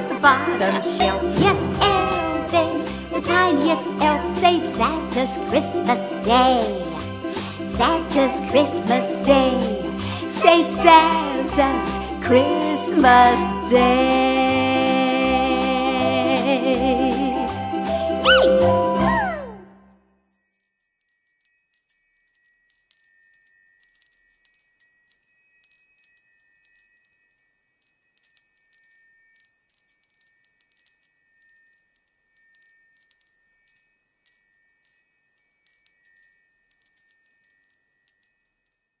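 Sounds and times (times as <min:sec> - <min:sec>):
high tinkling chimes: 0:00.7 - 0:15.4, 0:16.8 - 0:39.0.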